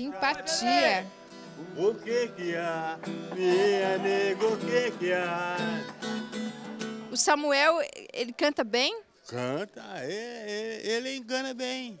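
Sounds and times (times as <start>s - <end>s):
old man singing: 0.0s - 6.0s
acoustic guitar: 0.0s - 11.4s.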